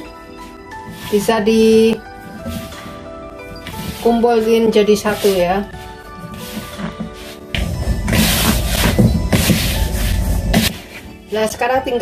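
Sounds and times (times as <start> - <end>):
background music: 0.0 - 12.0
hands kneading dough in a bowl: 0.0 - 12.0.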